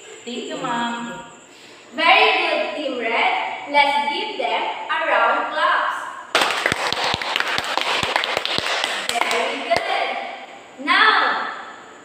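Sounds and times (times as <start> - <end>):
students applauding: 6.3 - 10.0.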